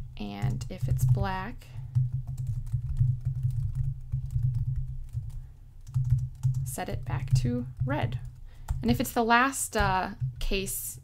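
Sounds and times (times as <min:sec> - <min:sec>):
low steady hum: 0:00.0 - 0:11.0
computer keyboard typing: 0:00.2 - 0:09.1.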